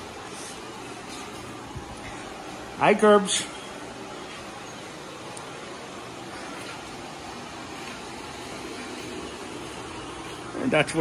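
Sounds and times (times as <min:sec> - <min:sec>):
steady hissing noise: 0:00.0 - 0:11.0.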